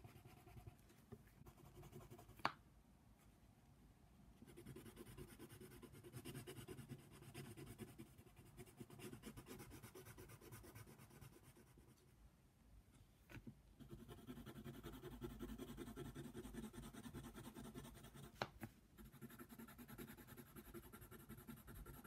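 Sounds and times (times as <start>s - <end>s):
pencil scratching on paper: 0.0s - 0.8s, 1.4s - 2.4s, 4.4s - 11.9s, 13.8s - 18.4s, 19.0s - 22.0s.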